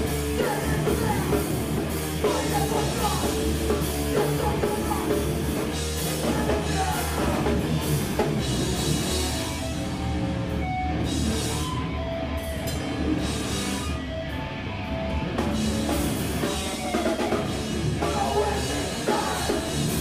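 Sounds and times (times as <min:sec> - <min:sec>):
live rock band playing: 0:00.0 - 0:20.0.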